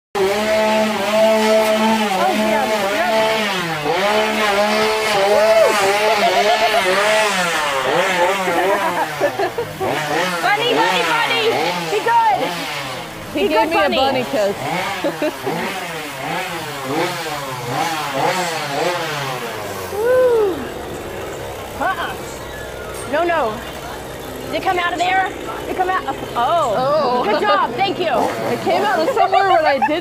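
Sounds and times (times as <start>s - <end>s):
chainsaw engine revving: 0.1s - 30.0s.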